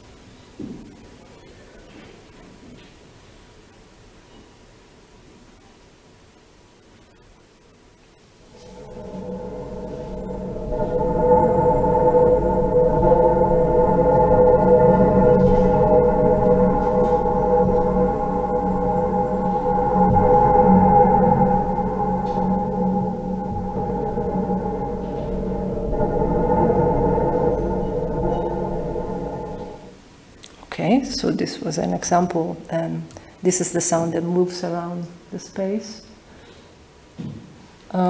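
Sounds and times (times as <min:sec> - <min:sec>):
electronic drone of held tones: 0:08.1 - 0:30.1.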